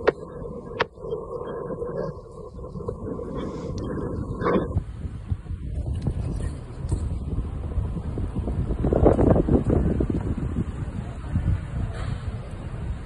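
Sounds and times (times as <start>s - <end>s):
car road and engine noise: 0.0s - 13.0s
wind on microphone: 0.0s - 13.0s.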